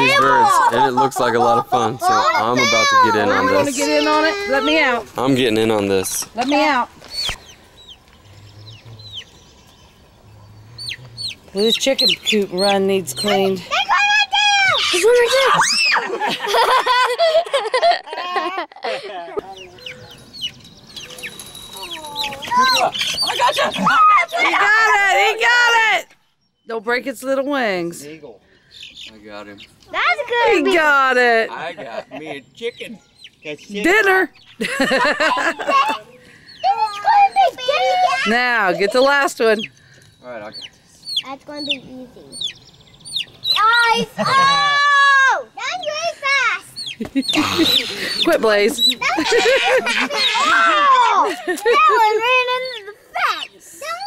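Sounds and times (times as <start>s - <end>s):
chicks peeping: 2.5s - 13.6s, 19.4s - 24.5s, 28.7s - 29.9s, 32.5s - 34.6s, 36.0s - 38.1s, 38.7s - 43.9s, 46.6s - 50.4s
high-pitched excited vocal calls: 10.7s - 16.1s, 19.4s - 25.9s, 32.8s - 39.8s, 40.5s - 54.0s.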